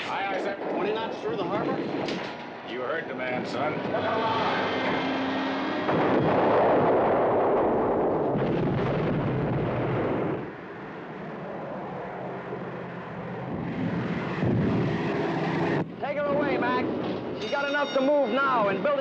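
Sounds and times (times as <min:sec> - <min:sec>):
voices: 0:00.0 - 0:05.2, 0:15.8 - 0:19.0
gunfire and explosions: 0:05.8 - 0:10.5.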